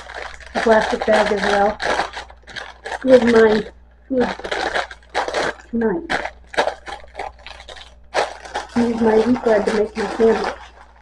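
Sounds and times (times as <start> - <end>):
plastic and paper bags crinkling: 0.0 - 11.0.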